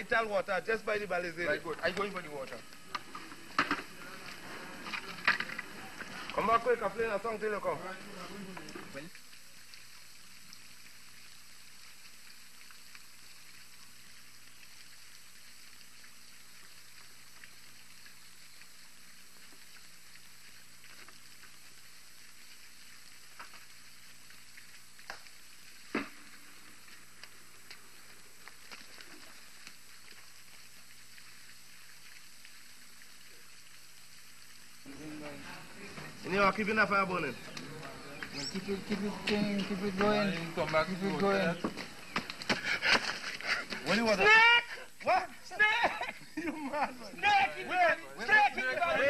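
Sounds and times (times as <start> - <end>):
running stream water: 0.0 - 49.0.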